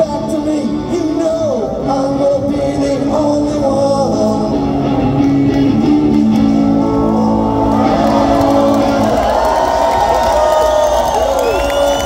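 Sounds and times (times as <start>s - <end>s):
crowd cheering and whooping: 6.6s - 12.0s.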